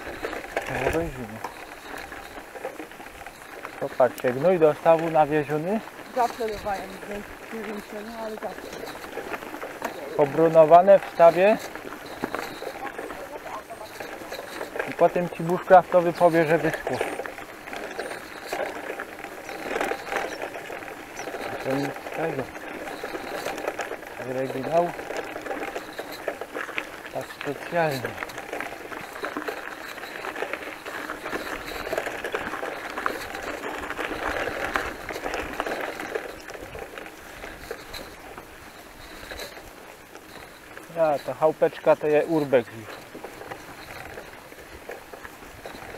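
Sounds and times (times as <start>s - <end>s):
bicycle tyre noise on dirt: 0.0s - 45.9s
small rattles and clicks: 0.0s - 45.9s.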